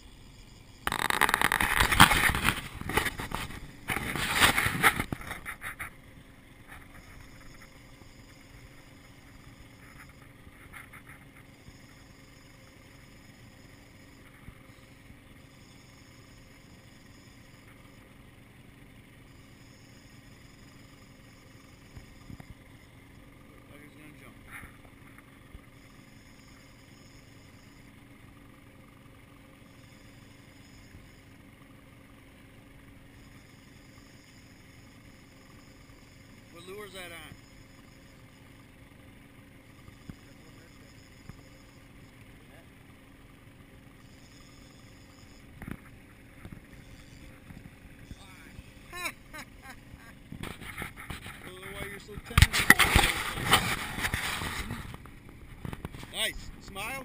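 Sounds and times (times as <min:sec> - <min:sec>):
outboard motor running: 0:00.0 - 0:57.0
loud rough noise: 0:00.8 - 0:11.3, 0:45.4 - 0:57.0.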